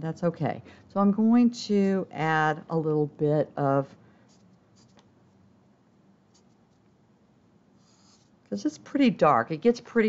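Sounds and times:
marker scratching on paper: 4.3s - 5.0s, 6.3s - 6.9s, 7.8s - 8.4s.

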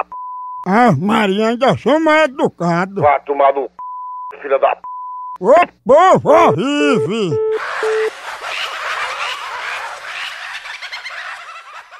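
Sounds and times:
turkeys gobbling: 7.5s - 11.9s.

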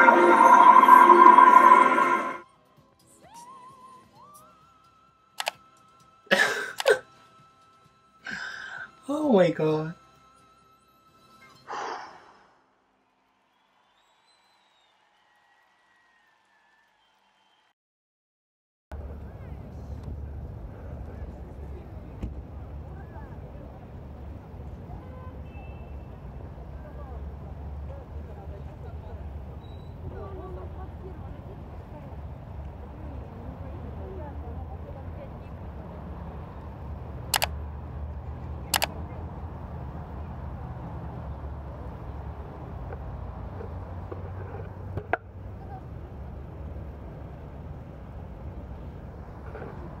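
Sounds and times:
indistinct voices: 0.0s - 2.4s
road traffic rumble: 19.0s - 50.0s.

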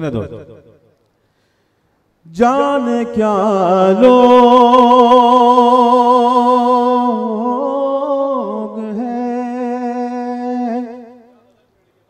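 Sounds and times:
man singing a long note: 2.3s - 11.5s.

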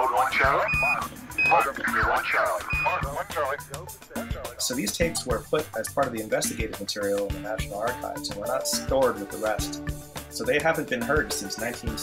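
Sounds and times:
radio voice traffic: 0.0s - 3.7s
short high beeps: 0.6s - 1.7s, 2.7s - 3.0s.

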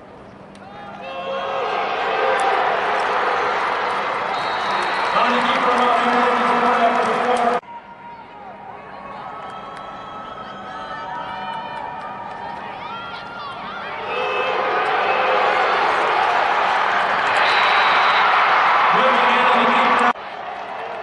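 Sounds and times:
crowd shouting and cheering: 0.6s - 21.0s.

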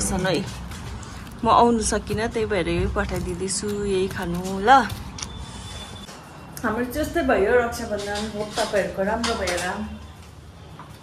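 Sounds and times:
woman speaking: 1.4s - 5.0s, 6.6s - 10.0s.

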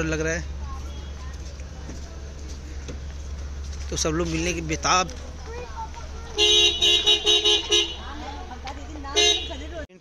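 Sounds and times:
vehicle horn honking: 6.4s - 8.4s, 9.1s - 9.9s.

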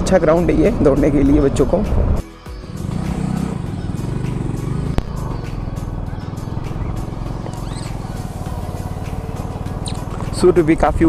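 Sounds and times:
motorcycle engine running: 2.5s - 11.0s.

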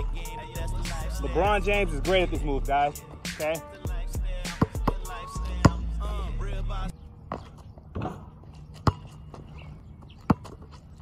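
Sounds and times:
rapping over a beat: 0.0s - 6.9s
basketball bouncing on asphalt: 4.4s - 6.0s, 7.2s - 11.0s.

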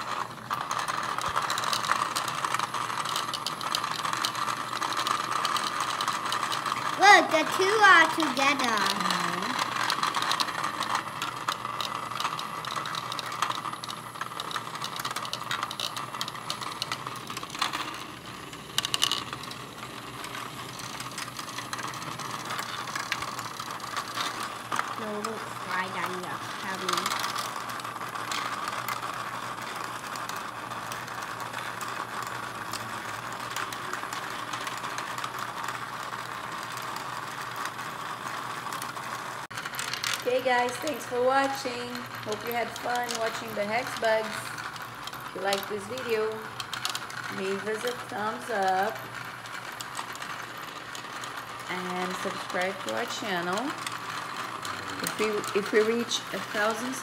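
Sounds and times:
micro-robots buzzing and rattling: 0.0s - 57.0s.

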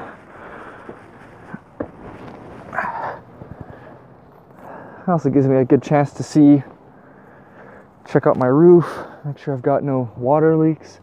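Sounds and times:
short rustle: 0.0s - 4.5s.

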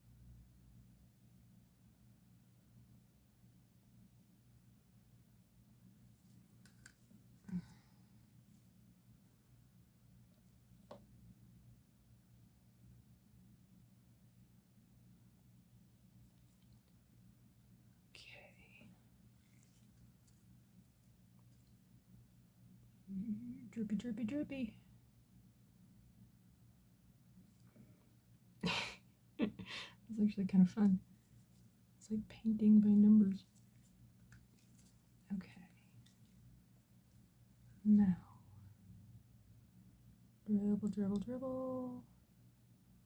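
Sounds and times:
low steady hum: 0.0s - 43.0s
faint whisper: 7.4s - 8.1s, 18.1s - 19.1s, 23.0s - 24.8s, 35.2s - 36.3s.

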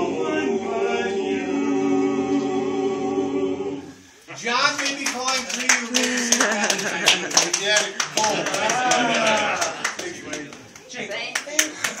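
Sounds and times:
people talking: 4.3s - 12.0s
people clapping: 4.5s - 12.0s.

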